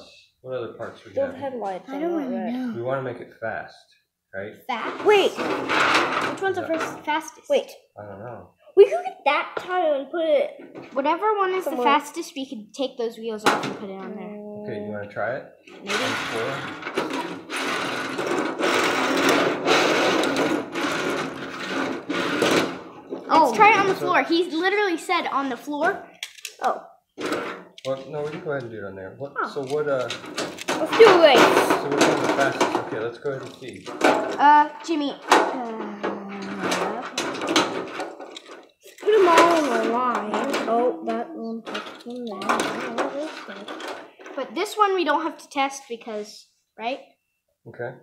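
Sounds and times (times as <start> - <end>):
child's voice: 1.2 - 3.0, 4.7 - 5.4, 6.4 - 7.8, 8.8 - 15.0, 15.8 - 16.2, 23.3 - 26.0, 26.6 - 26.8, 30.8 - 31.8, 34.4 - 37.2, 39.0 - 43.8, 44.4 - 47.0
toy cars rattling across metal tray: 5.0 - 7.2, 15.8 - 24.6, 29.5 - 35.6, 36.3 - 40.8, 41.6 - 44.8.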